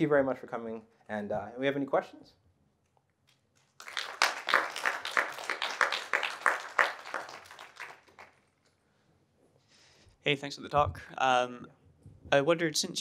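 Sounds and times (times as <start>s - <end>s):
audience applauding: 3.7s - 8.5s.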